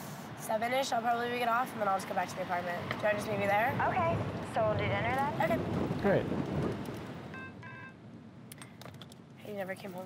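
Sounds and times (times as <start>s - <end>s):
mobile phone beeps: 7.3s - 8.0s.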